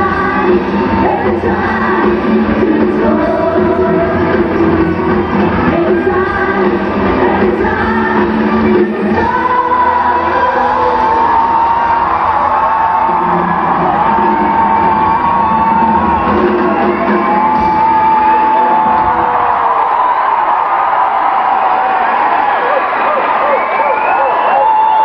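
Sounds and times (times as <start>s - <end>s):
live rock band playing: 0.0s - 19.4s
crowd shouts and whoops: 0.0s - 25.0s.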